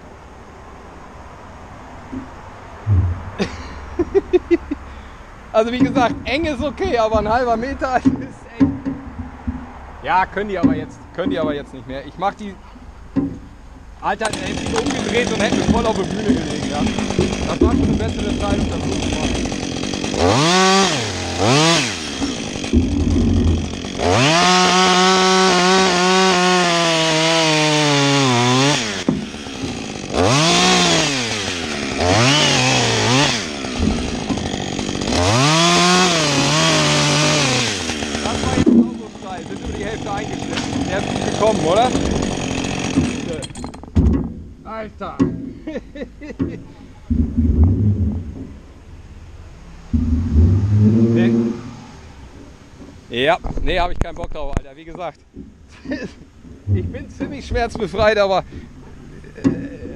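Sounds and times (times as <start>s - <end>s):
scattered knocks: 5.7s - 9.8s, 10.6s - 11.6s, 13.1s - 13.5s, 14.3s - 20.3s, 22.1s - 24.1s, 33.8s - 35.2s, 38.3s - 44.6s
chainsaw revving: 14.2s - 43.8s.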